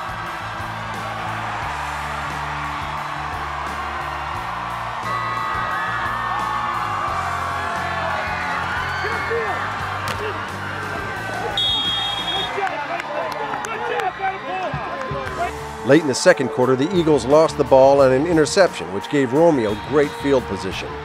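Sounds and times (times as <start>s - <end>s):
background music with bass: 0.0s - 12.6s, 14.8s - 21.0s
crowd cheering and shouting: 0.0s - 21.0s.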